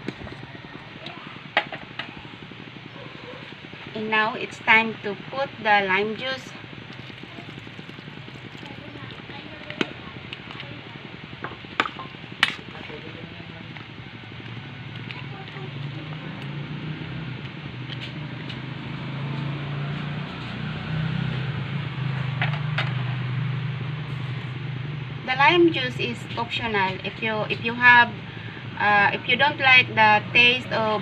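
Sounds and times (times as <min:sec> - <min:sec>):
low hum: 0:00.0 - 0:31.0.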